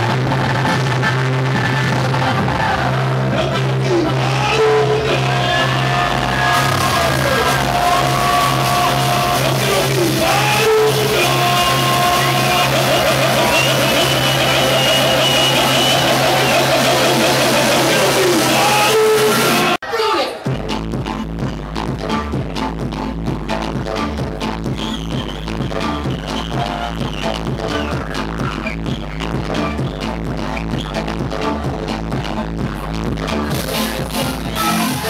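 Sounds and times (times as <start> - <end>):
loud club dance music: 0.0 - 35.0.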